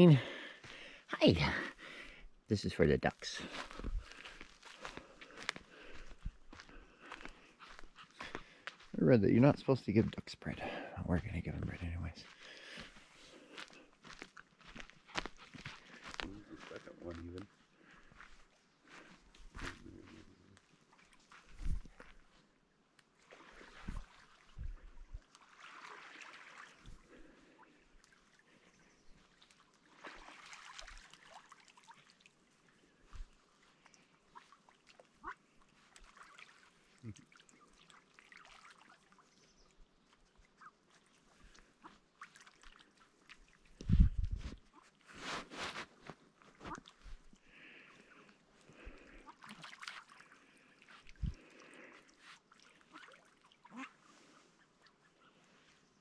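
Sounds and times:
ducks splashing and dabbling: 0:03.2 - 0:43.8, 0:44.6 - 0:45.2, 0:46.3 - 0:56.0
soft duck calls: 0:34.3 - 0:36.3, 0:46.6 - 0:47.0, 0:47.9 - 0:49.7, 0:52.7 - 0:55.5.

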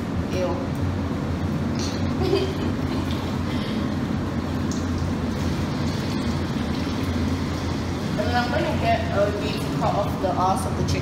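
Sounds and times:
low steady rumble: 0:00.0 - 0:11.0
tap water running into steel sink: 0:04.6 - 0:09.6.

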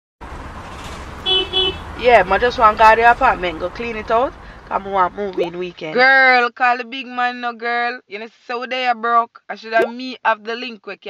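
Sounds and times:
road traffic rumble: 0:00.2 - 0:06.1
car horn beeps: 0:01.2 - 0:01.9.

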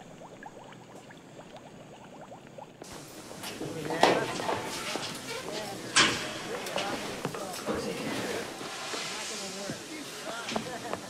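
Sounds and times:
liquid bubbling in a glass flask: 0:00.0 - 0:04.0.

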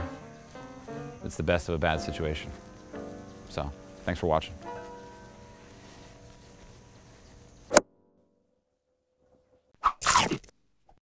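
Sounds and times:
faint background music: 0:00.0 - 0:07.8.

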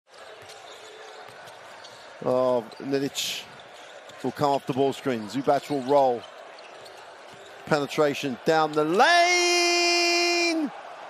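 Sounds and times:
arena crowd murmur: 0:00.1 - 0:11.0.

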